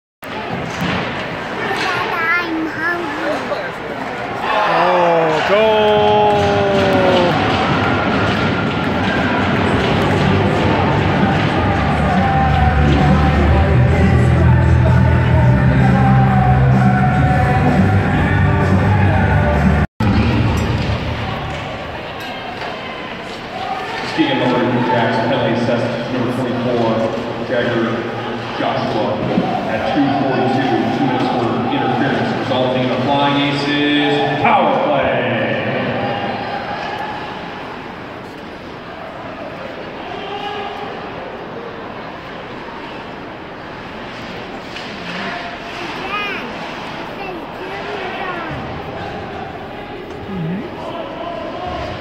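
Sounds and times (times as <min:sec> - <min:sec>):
hockey play on the ice: 0:00.2 - 0:15.3, 0:20.0 - 0:35.0, 0:35.6 - 0:52.0
crowd murmur: 0:00.2 - 0:33.0, 0:34.8 - 0:52.0
hockey sticks and puck clicking: 0:06.3 - 0:13.4.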